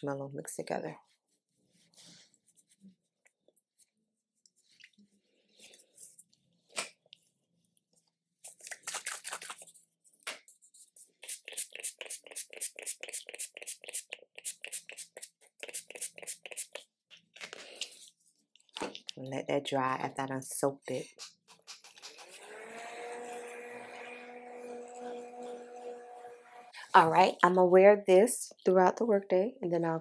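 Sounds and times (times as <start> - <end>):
spray bottle hissing: 11.2 - 16.8.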